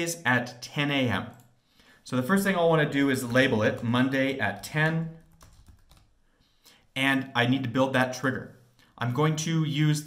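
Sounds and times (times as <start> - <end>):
keystrokes on computer keyboard: 4.6 - 6.1.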